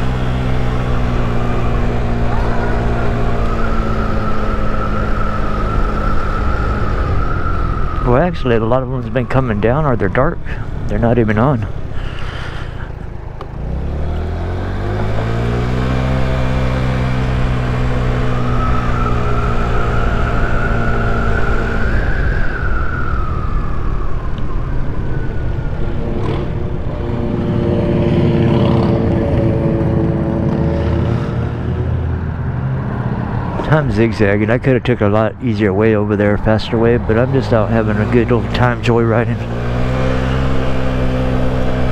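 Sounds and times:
high engine whine: 0.0s - 41.9s
scooter engine pulling away: 25.0s - 31.8s.

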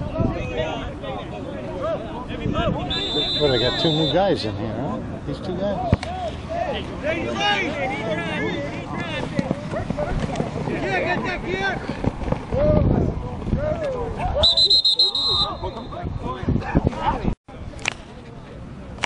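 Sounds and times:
referee's whistle: 2.9s - 4.3s, 14.4s - 16.0s.

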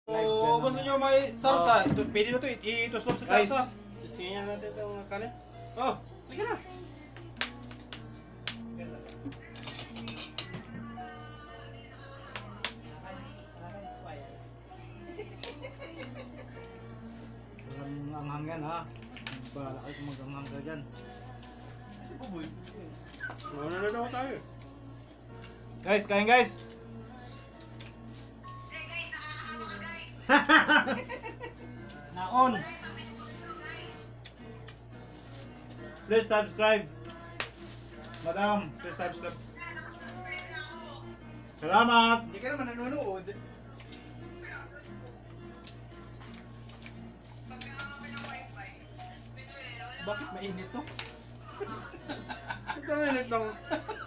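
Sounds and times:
voices in room: 0.0s - 54.0s.

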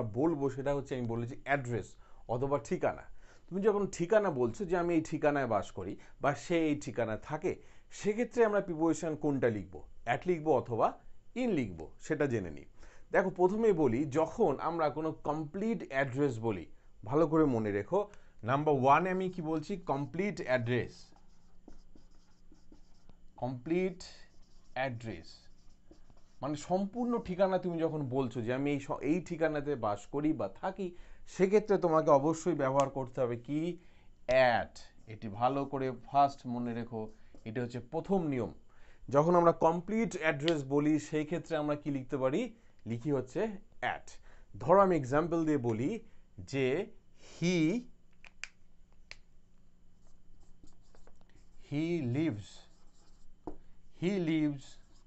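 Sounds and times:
marker pen on whiteboard: 17.1s - 30.7s, 31.4s - 38.4s, 39.2s - 46.2s, 47.5s - 55.0s
marker writing on whiteboard: 19.0s - 27.8s, 34.8s - 38.2s, 49.9s - 55.0s.

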